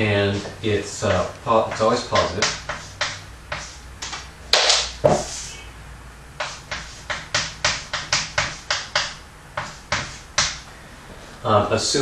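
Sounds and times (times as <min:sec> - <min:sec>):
chalk tapping on chalkboard: 0:01.7 - 0:05.5, 0:06.4 - 0:10.6.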